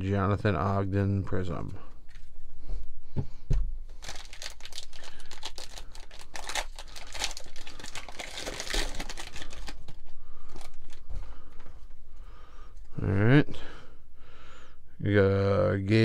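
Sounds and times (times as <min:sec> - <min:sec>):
plastic wrapper tearing and crinkling: 0:03.9 - 0:11.0.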